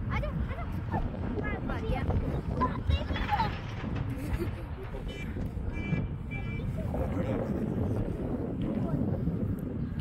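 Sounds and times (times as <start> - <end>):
wind rumble on microphone: 0.0 - 10.0
reversing alarm beeping: 5.2 - 6.7.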